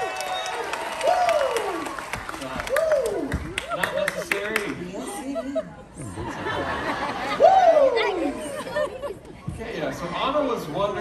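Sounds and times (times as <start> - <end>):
audience chatter: 0.0 - 11.0
actors talking on stage: 2.0 - 11.0.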